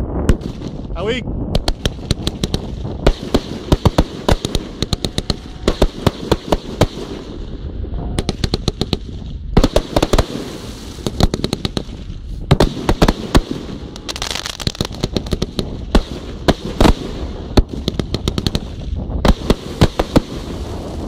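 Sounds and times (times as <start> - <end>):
fireworks bursting: 0.0 - 21.0
fireworks crackling: 0.0 - 21.0
fireworks popping: 0.2 - 7.6, 8.2 - 21.0.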